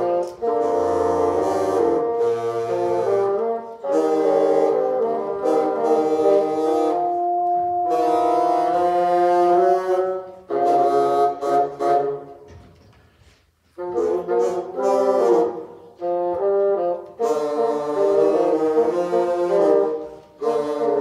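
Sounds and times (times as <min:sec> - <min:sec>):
bassoon ensemble playing chords: 0:00.0 - 0:12.5, 0:13.6 - 0:21.0.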